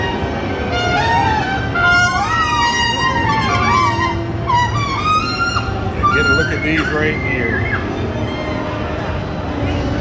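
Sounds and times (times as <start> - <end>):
wind instrument melody: 0.0 - 9.1
murmur of crowd: 0.0 - 10.0.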